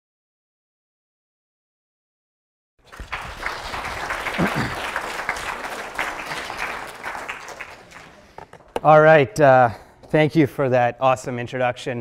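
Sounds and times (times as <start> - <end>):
audience applauding: 2.8 - 8.6.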